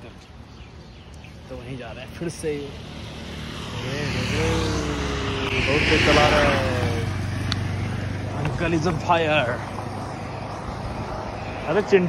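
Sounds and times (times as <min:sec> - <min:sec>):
vehicle passing by: 0:01.4 - 0:12.0.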